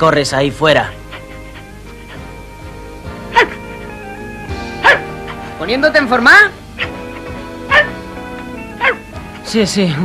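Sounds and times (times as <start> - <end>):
background music: 0.0 - 10.0
cartoon dog barking: 3.3 - 3.6, 4.8 - 5.4, 6.8 - 7.0, 7.7 - 8.0, 8.8 - 9.0.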